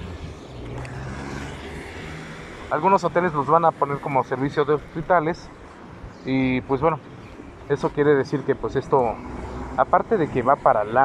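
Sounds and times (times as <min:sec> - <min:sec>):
car traffic rumble: 0:00.0 - 0:11.0.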